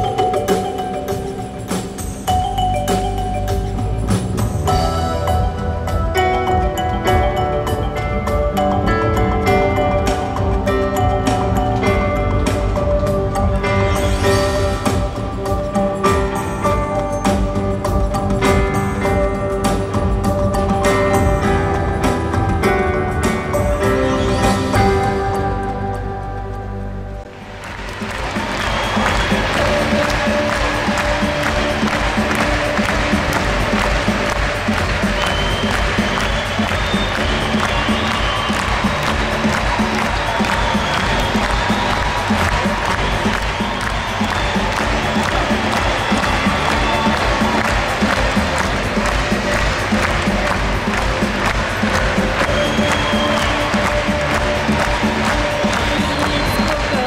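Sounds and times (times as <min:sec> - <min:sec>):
loud stage music: 0:00.0 - 0:57.0
crowd applause: 0:27.3 - 0:57.0.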